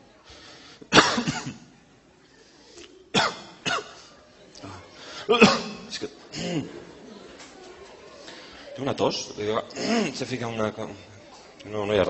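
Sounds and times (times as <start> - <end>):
person coughing: 0.9 - 1.6, 5.3 - 6.8, 9.8 - 10.2.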